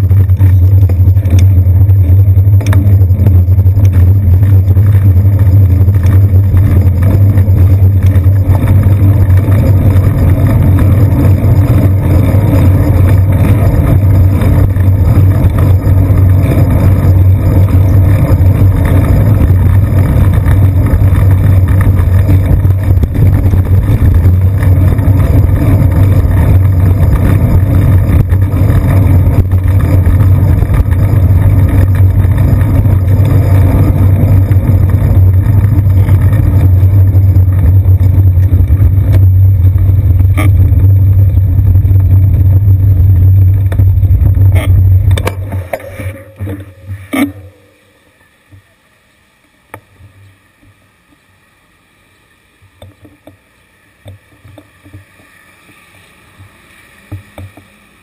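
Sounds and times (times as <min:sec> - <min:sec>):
wind on camera: 0:00.0 - 0:47.6
motor traffic: 0:00.0 - 0:58.0
road vibration rumble: 0:00.0 - 0:58.0.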